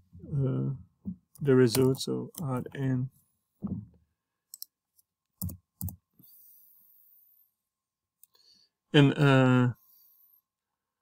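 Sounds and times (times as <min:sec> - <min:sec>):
computer keyboard keystrokes: 0:05.4 - 0:06.0.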